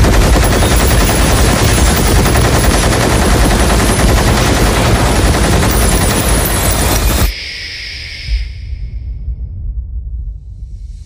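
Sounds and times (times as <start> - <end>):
machine gun rapid fire: 0.0 - 7.3.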